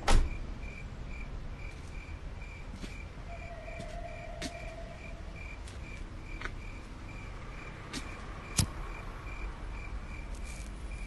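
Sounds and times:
crickets chirping: 0.1s - 11.0s.

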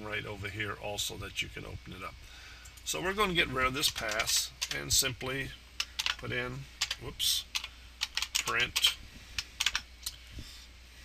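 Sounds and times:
keyboard keystrokes: 6.8s - 8.9s, 9.6s - 9.8s.

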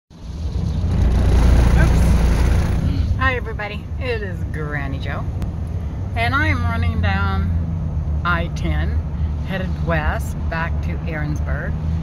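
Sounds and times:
car road and engine rumble: 0.1s - 12.0s
woman talking: 2.9s - 5.3s, 6.2s - 7.6s, 8.2s - 11.8s.

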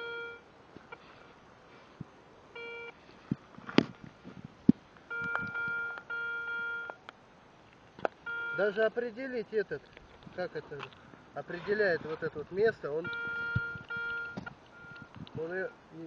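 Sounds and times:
metal detector beeping: 0.0s - 0.5s, 2.6s - 3.0s, 5.1s - 7.0s, 8.2s - 8.8s, 13.0s - 15.8s
sharp clicks: 13.1s - 15.5s.

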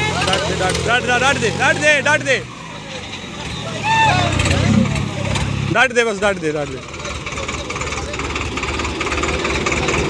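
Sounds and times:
tractor diesel engine straining: 0.0s - 10.0s
men shouting: 3.6s - 4.8s.

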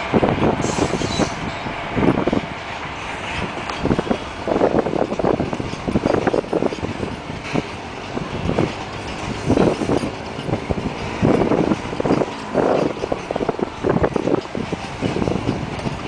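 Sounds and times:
train rumble: 0.0s - 16.0s
train wheels clattering on rail joints: 0.0s - 16.0s.

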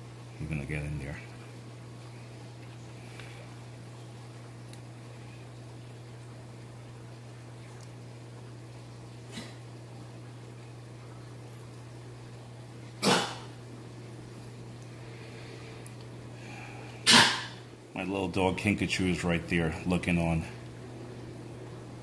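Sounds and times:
steady low hum: 0.0s - 22.0s
person sneezing: 13.0s - 13.5s, 17.0s - 17.6s
faint puff: 17.0s - 17.5s.

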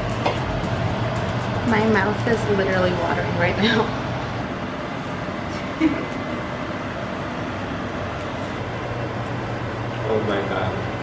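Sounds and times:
fan whooshing with low hum: 0.0s - 11.0s.

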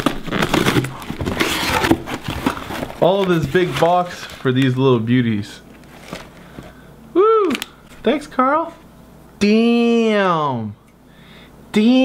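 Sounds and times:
cardboard box being torn open: 0.0s - 4.4s.

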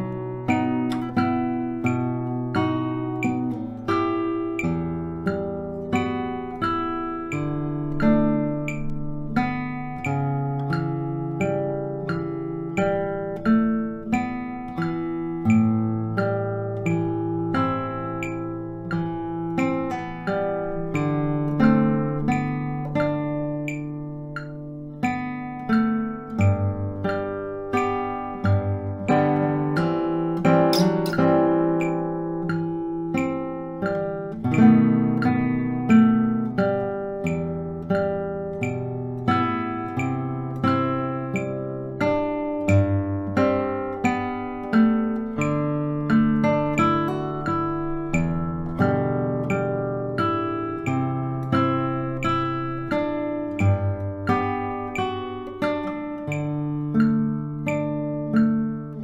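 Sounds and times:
fingerstyle classical guitar: 0.0s - 59.0s.

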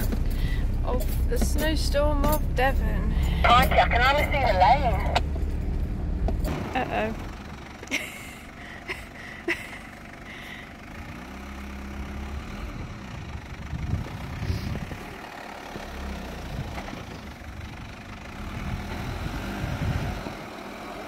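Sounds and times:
engine running at low revs: 0.0s - 21.0s.

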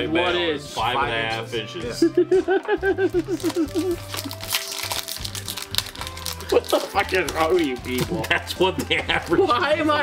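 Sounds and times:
background music: 0.0s - 10.0s
foil wrapper crinkling: 3.0s - 9.7s.

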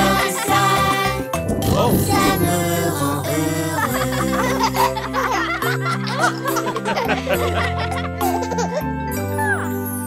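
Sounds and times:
cheerful children's music: 0.0s - 10.0s
children and baby giggling: 3.8s - 9.7s.

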